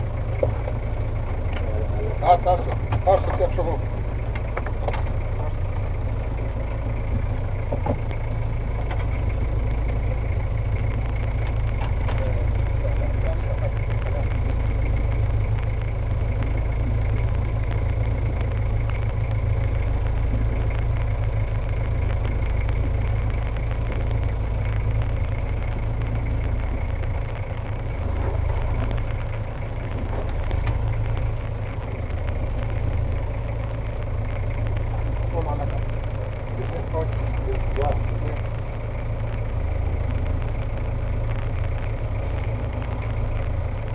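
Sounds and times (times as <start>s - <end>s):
boat engine idling: 0.0s - 43.9s.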